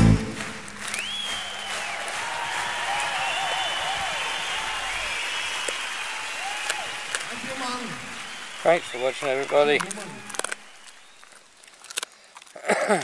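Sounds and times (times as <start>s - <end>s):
audience applauding: 0.0s - 11.4s.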